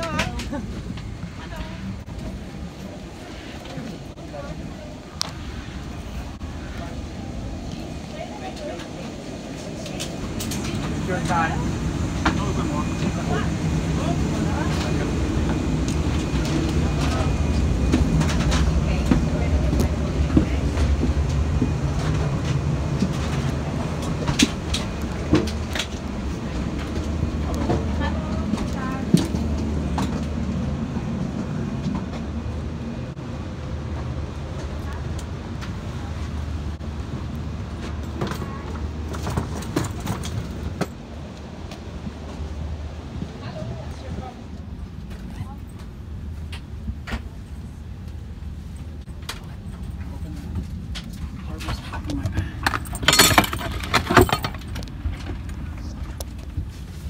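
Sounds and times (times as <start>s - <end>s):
faint passenger voices: 0.0s - 33.2s, 33.9s - 40.9s, 42.3s - 57.0s
airliner cabin rumble: 0.0s - 57.0s.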